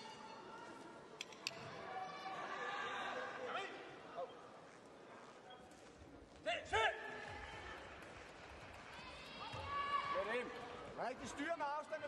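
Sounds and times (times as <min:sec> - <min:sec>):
loud shouts: 0:09.0 - 0:10.6.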